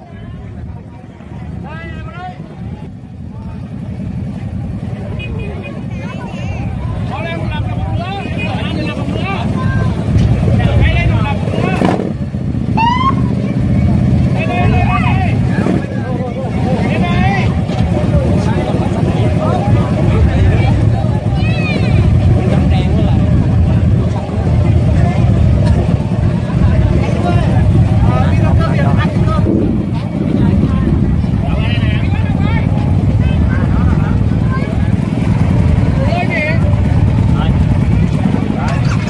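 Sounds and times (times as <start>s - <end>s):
crowd voices and shouts: 0.0s - 39.0s
motorcycle engine rumbling: 0.0s - 39.0s.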